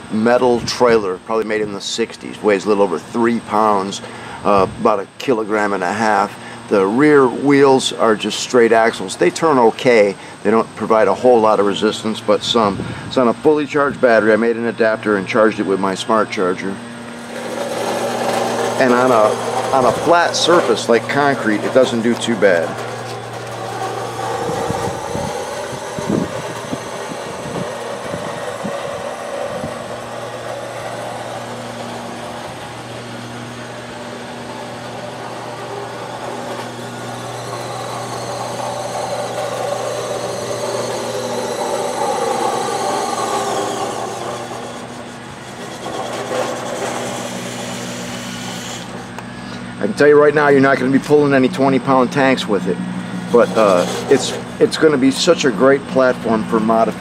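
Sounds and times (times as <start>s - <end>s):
tyres rolling on concrete: 16.3s - 49.2s, 53.2s - 57.0s
electric motor whining: 16.4s - 57.0s.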